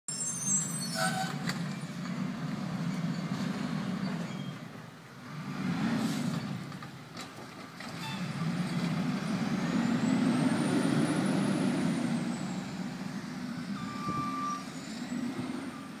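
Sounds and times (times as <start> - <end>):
short beep: 13.8 - 14.7.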